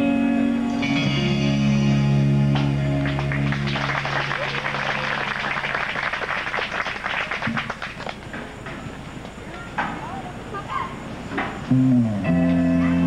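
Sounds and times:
held music chord: 0:00.0 - 0:03.5, 0:11.7 - 0:13.0
audience applauding: 0:02.6 - 0:08.3.

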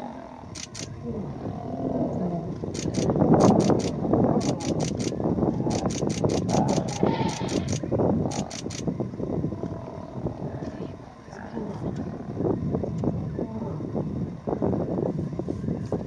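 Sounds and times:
lions growling: 0:00.0 - 0:08.8, 0:09.4 - 0:14.0.

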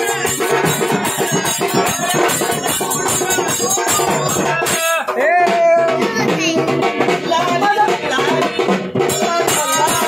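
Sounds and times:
drum percussion: 0:00.0 - 0:10.0
men singing a devotional song: 0:00.0 - 0:10.0
rattle percussion: 0:00.0 - 0:10.0.

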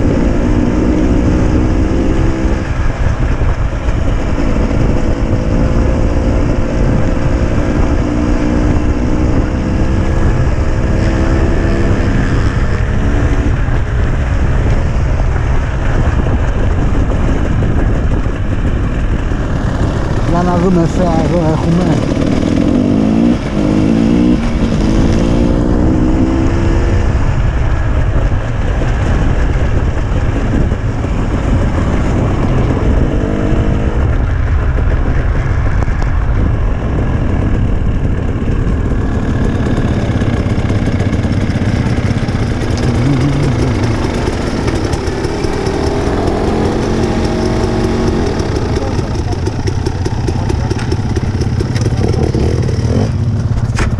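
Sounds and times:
dirt bike engine revving: 0:19.6 - 0:27.1, 0:38.9 - 0:53.6.

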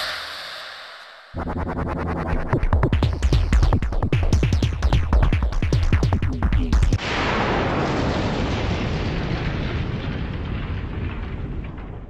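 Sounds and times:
electronic music pounding beat: 0:01.3 - 0:07.0.

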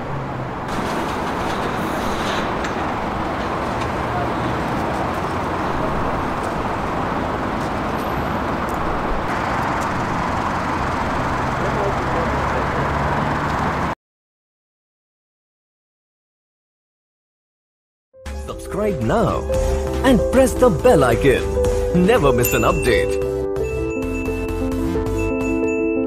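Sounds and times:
low engine hum: 0:00.0 - 0:14.0
road traffic: 0:00.0 - 0:14.0, 0:18.3 - 0:26.0.

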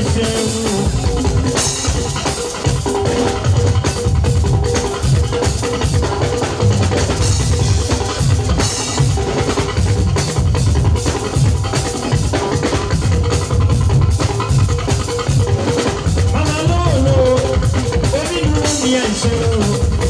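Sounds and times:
bass guitar: 0:00.0 - 0:20.0
drum kit beat: 0:00.0 - 0:20.0.

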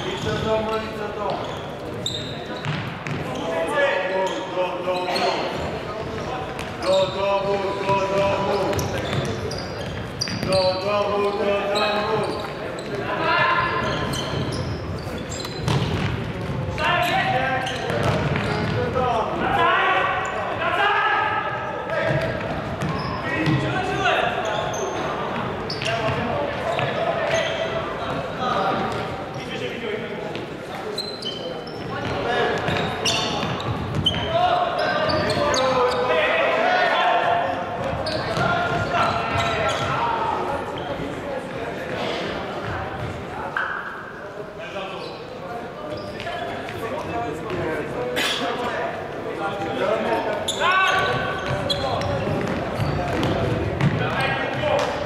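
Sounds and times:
voices shouting in a hall: 0:00.0 - 0:55.0
ball kicked and bouncing: 0:15.6 - 0:16.6.

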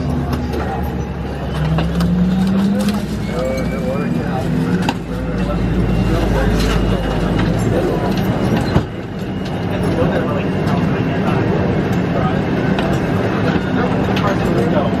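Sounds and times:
aircraft cabin hum: 0:00.0 - 0:15.0
indistinct passenger chatter: 0:00.0 - 0:15.0.

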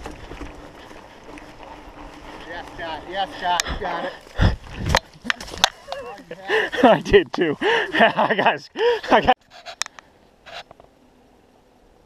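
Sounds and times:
mountain bike thudding and clattering: 0:00.0 - 0:06.4.

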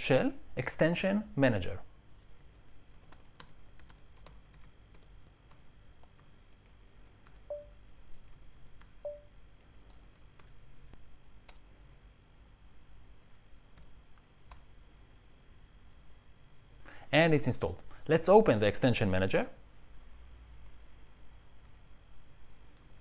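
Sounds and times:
keystrokes on keyboard: 0:02.5 - 0:10.6.

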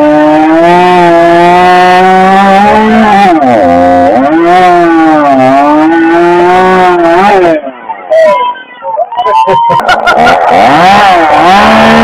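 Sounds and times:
chainsaw cutting through log: 0:00.0 - 0:07.6, 0:10.0 - 0:12.0.

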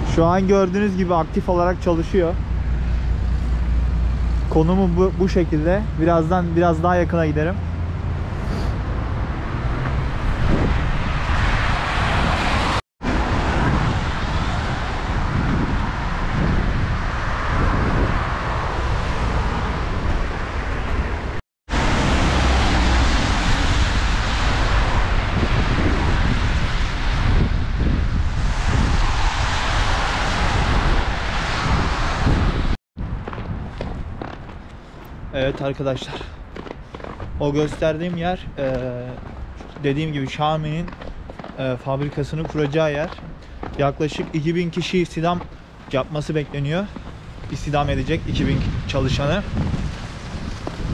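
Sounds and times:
car engines: 0:00.0 - 0:50.9
tyres on wet road: 0:00.0 - 0:50.9
wind on microphone: 0:08.2 - 0:50.9.

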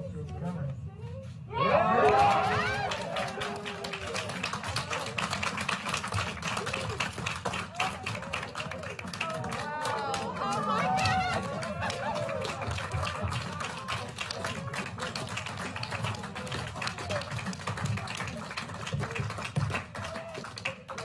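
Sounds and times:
people cheering: 0:01.5 - 0:21.0
people clapping: 0:01.8 - 0:21.0.

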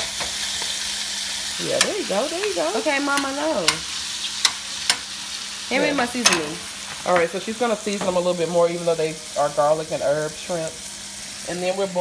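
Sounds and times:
shrimp sizzling in a frying pan: 0:00.0 - 0:12.0
metal tongs clicking on pan: 0:01.6 - 0:02.5, 0:03.1 - 0:05.1, 0:06.2 - 0:06.5.

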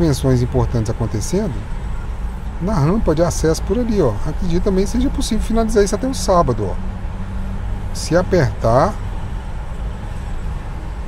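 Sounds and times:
background traffic rumble: 0:00.0 - 0:11.0.

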